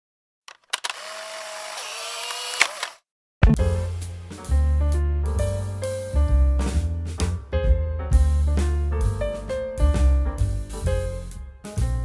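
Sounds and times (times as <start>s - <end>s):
mechanical clicks: 0.5s - 3.0s
steady mechanical whir: 0.7s - 3.0s
music: 3.4s - 12.0s.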